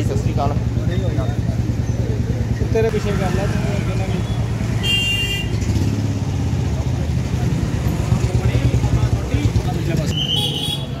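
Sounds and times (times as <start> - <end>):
traffic engine rumble: 0.0 - 11.0
voices: 6.2 - 11.0.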